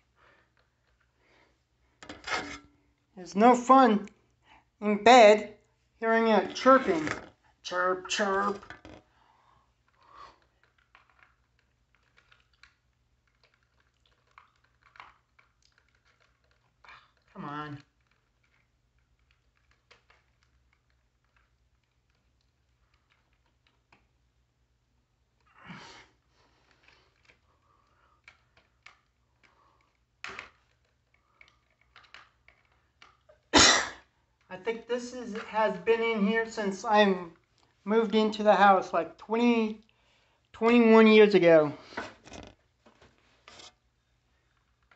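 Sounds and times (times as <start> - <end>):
plastic clicks and scrapes: 2.0 - 2.8, 9.8 - 24.3, 26.2 - 33.5, 41.9 - 44.9.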